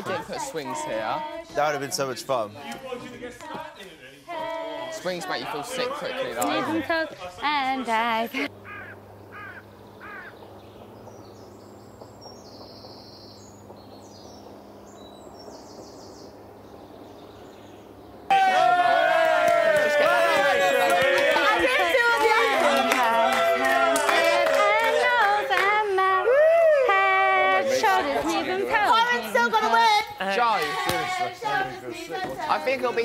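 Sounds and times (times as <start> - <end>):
group singing or chanting: 0.0 - 8.4, 18.3 - 33.0
soft voices: 18.3 - 33.0.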